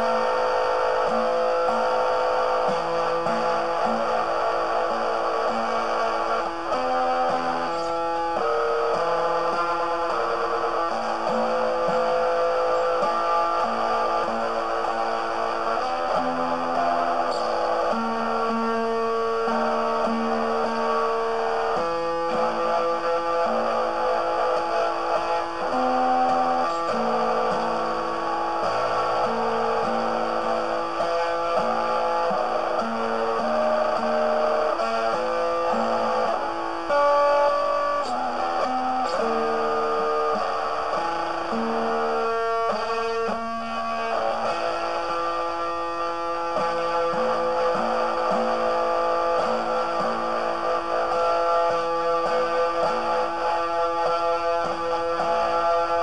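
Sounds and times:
instrumental guitar music: 0:00.0 - 0:56.0.

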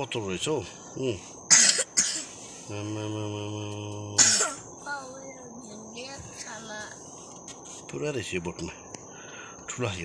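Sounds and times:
high insect drone: 0:00.0 - 0:10.0
person coughing hard: 0:01.5 - 0:02.4, 0:04.2 - 0:04.6.

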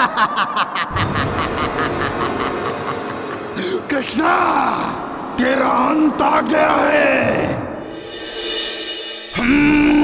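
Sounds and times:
man laughing theatrically: 0:00.0 - 0:03.9.

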